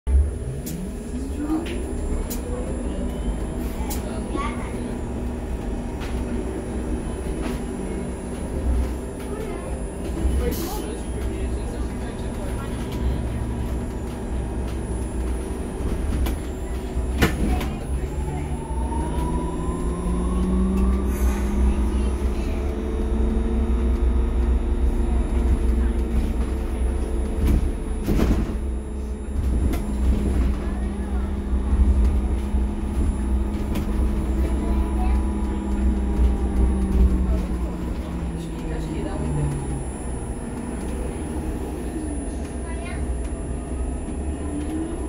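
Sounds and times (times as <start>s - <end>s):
low road rumble: 0.0s - 45.0s.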